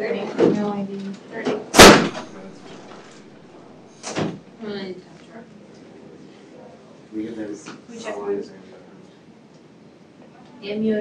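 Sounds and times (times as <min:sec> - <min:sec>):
loud sharp bang: 0:01.7 - 0:03.0.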